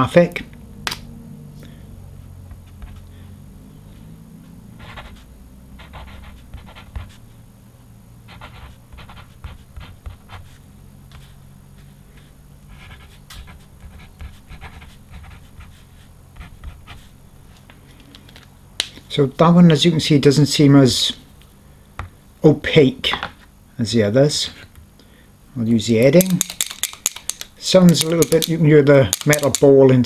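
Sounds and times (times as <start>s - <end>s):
steady low hum: 0.0s - 30.0s
paint pen scratching on paper: 4.8s - 7.2s, 8.3s - 17.2s.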